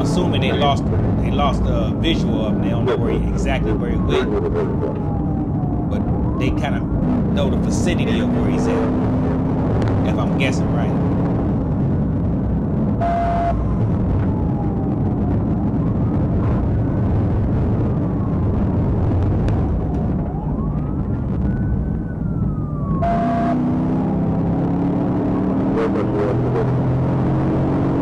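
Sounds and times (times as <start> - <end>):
car engine and road noise: 0.0 - 28.0
police siren wailing: 0.0 - 28.0.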